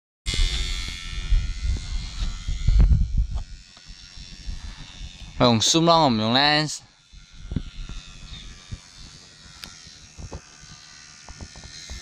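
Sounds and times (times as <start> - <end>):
wind buffeting microphone: 0.3 - 5.4, 7.2 - 9.0
model airplane motor whine: 0.3 - 12.0.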